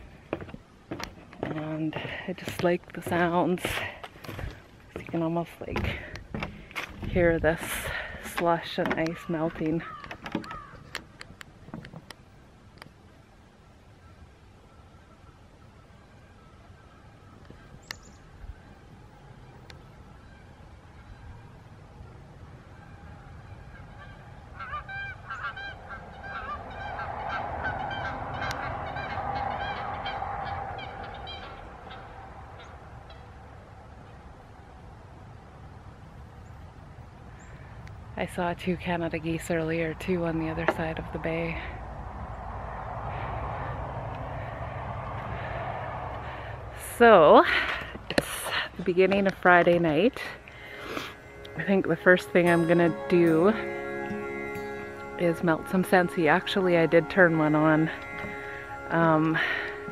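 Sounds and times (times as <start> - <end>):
geese honking: 22.8 - 33.5, 42.7 - 59.9.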